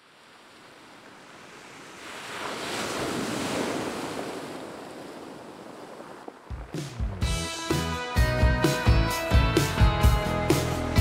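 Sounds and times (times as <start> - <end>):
sea surf breaking on shore: 0.0 - 7.3.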